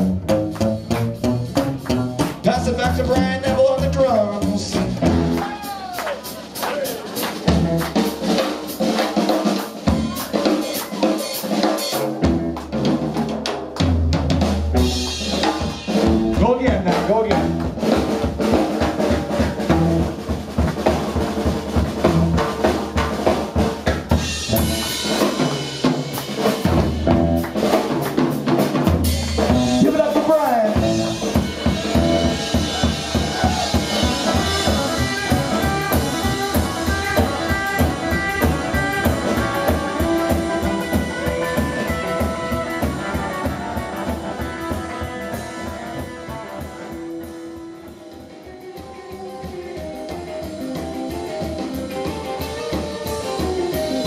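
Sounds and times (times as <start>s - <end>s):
upright bass with slap clicks: 0.0s - 5.4s, 26.7s - 28.3s
drum kit with snare and rimshots: 0.0s - 54.0s.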